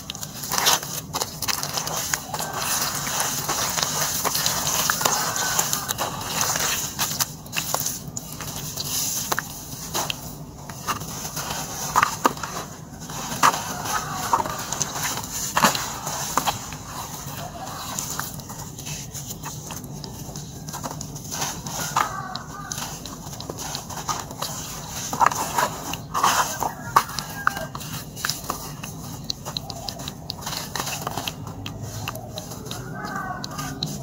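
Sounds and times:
wet sand squelching and crunching: 0.0s - 34.0s
faint distant calls: 12.5s - 34.0s.

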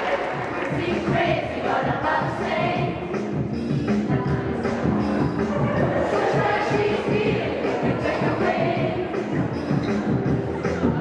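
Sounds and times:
children's choir singing: 0.0s - 3.4s, 4.0s - 11.0s
music: 0.0s - 11.0s.

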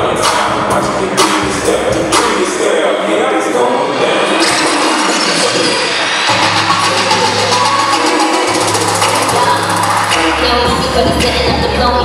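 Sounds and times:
hip hop dance music: 0.0s - 12.0s.

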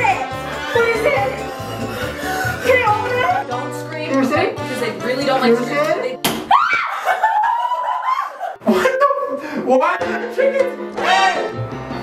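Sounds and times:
short sharp smack: 6.2s - 6.5s
woman screaming in fright: 6.5s - 8.5s.

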